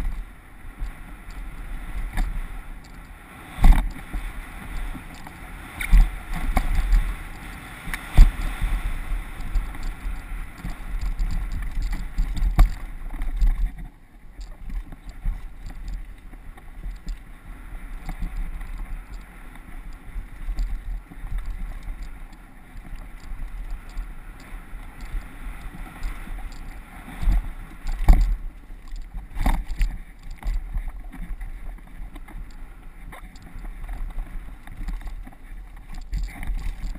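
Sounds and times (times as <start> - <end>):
tyre and trail noise: 0.0 - 36.9
wind on microphone: 0.0 - 36.9.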